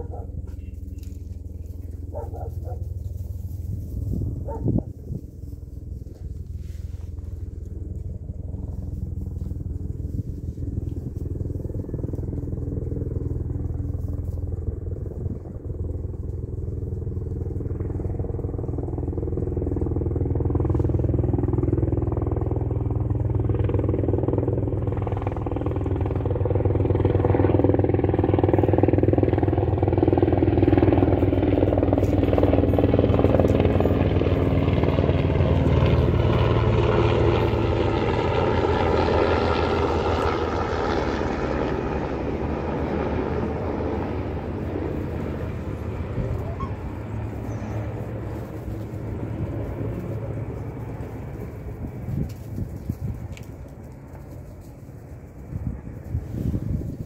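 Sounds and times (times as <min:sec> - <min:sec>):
engine drone: 0:00.0 - 0:57.0.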